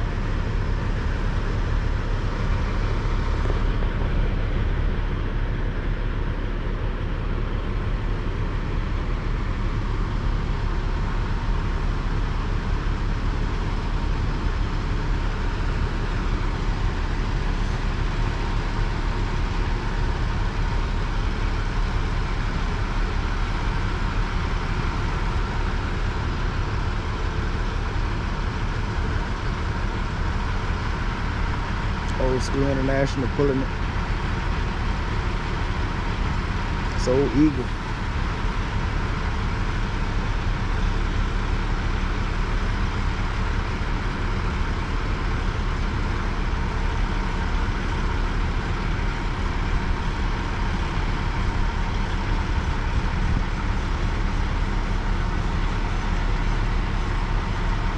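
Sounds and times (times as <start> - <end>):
heavy diesel engines running: 0.0 - 57.9.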